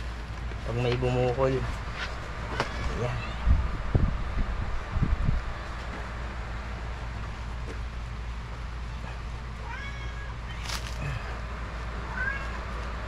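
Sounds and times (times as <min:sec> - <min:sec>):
steady background hum: 0:00.0 - 0:13.0
cat meowing: 0:02.5 - 0:03.6, 0:08.9 - 0:11.3, 0:12.0 - 0:12.6.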